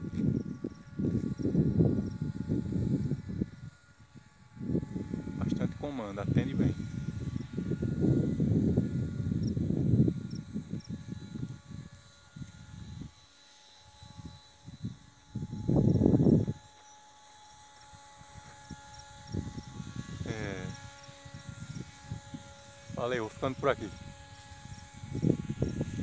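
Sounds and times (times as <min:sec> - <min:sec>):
wind buffeting microphone: 0:00.0 - 0:13.2, 0:13.9 - 0:16.8, 0:17.8 - 0:26.0
faint distant motor whine: 0:00.0 - 0:26.0.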